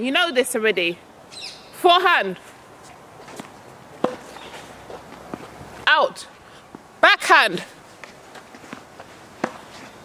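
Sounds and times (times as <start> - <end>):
tennis racket hitting ball: 3.3 - 5.5, 8.0 - 9.9.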